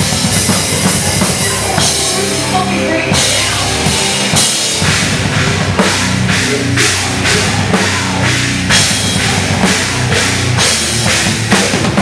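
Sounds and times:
bass guitar: 0.0 - 12.0
distorted electric guitar: 0.0 - 12.0
pounding drum kit: 0.0 - 12.0.

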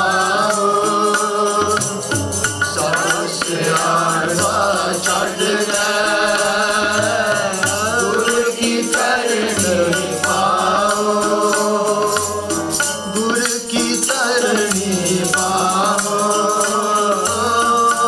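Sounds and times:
devotional singing: 0.0 - 18.0
harmoniums playing: 0.0 - 18.0
tabla strokes: 0.0 - 18.0.

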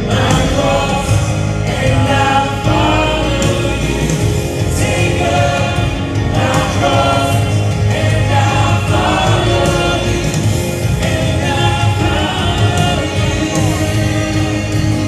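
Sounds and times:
amplified accompaniment with bass: 0.0 - 15.0
voices singing gospel music: 0.0 - 15.0.

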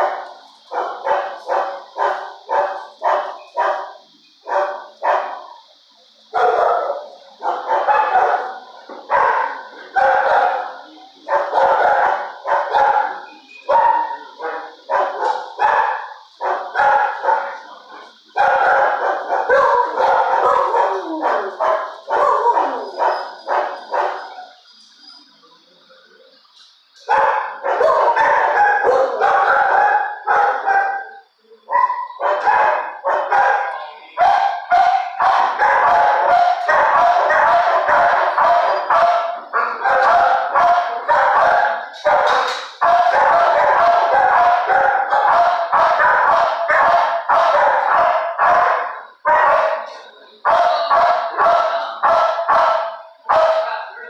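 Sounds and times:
dogs barking: 0.0 - 25.4, 26.7 - 54.0.

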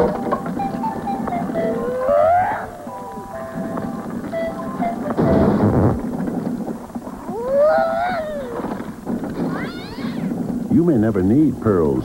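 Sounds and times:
cat meowing: 9.4 - 10.3.

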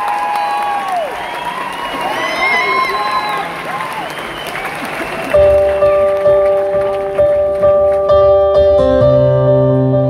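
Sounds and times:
shouted whoops: 0.0 - 5.6
audience cheering and applauding: 0.0 - 8.1
repeated keyboard chord: 5.4 - 10.0.

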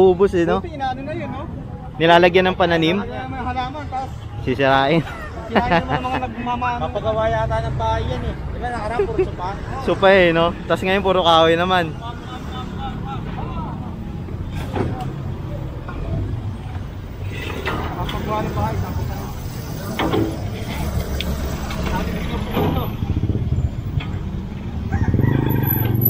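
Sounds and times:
street traffic rumble: 0.0 - 26.0
voices: 0.0 - 26.0.

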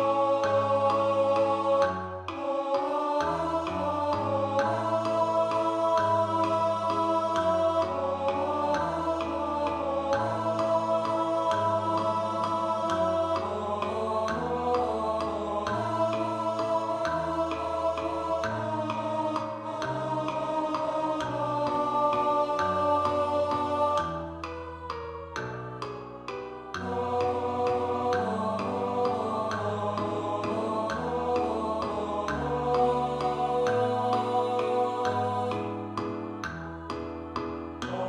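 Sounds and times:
piano chords: 0.0 - 38.0
synthesized choir voices: 0.0 - 38.0.

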